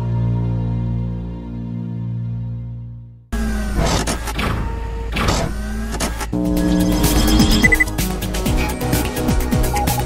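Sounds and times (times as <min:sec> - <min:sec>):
electronic background music: 0:06.3 - 0:10.0
whooshing motor-like effects: 0:06.4 - 0:07.8
sustained synth chord: 0:06.4 - 0:08.0.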